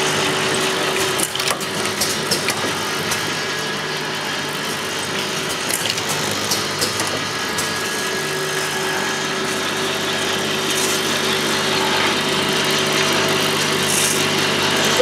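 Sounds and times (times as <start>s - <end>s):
machine motors humming: 0.0s - 15.0s.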